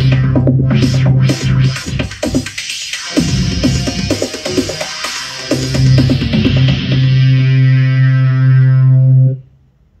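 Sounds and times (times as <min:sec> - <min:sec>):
drum hits: 0:00.0 - 0:07.0.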